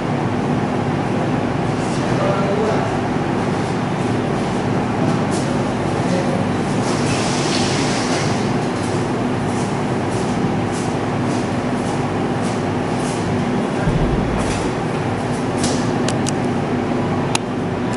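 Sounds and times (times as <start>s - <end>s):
faint hum: 13.8s - 16.1s
loud rumbling noise: 13.8s - 16.3s.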